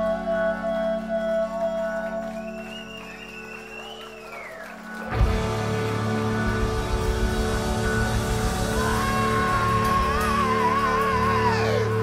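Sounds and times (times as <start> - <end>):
sustained keyboard chord: 4.7 - 12.0.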